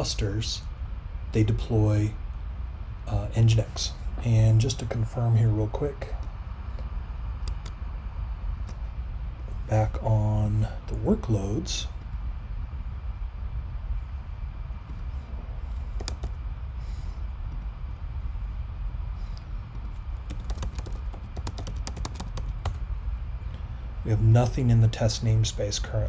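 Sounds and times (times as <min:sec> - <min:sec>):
steady low hum: 0:00.0 - 0:26.0
computer keyboard typing: 0:07.4 - 0:07.8, 0:15.8 - 0:16.4, 0:19.8 - 0:22.8.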